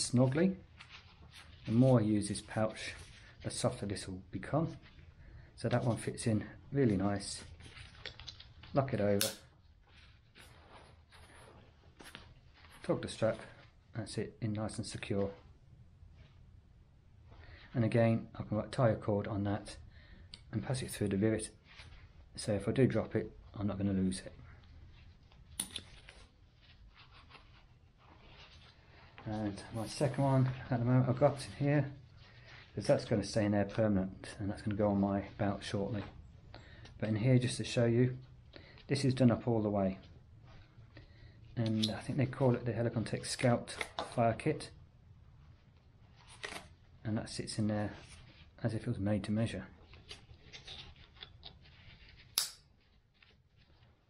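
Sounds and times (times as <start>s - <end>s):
fabric rustling: 0.0s - 14.0s, 20.9s - 23.5s, 24.1s - 42.7s, 49.7s - 54.0s
nylon pouch flap rustling: 46.1s - 46.8s
pouch sharp click: 52.4s - 52.6s.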